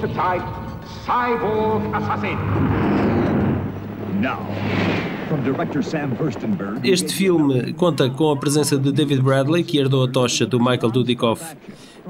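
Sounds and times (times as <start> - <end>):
man talking: 0.0 - 2.5, 5.3 - 11.5
man's voice in trailer soundtrack: 0.0 - 2.9
low rumble: 0.3 - 6.9.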